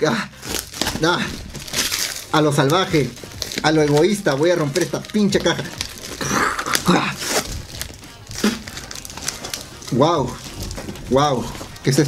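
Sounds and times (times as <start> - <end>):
packaging crinkles: 0.3 - 12.0
cardboard box tearing: 0.4 - 12.0.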